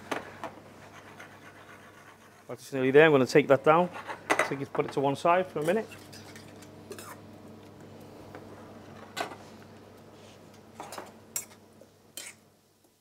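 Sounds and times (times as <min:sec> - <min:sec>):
steady low hum: 0:03.0 - 0:12.5.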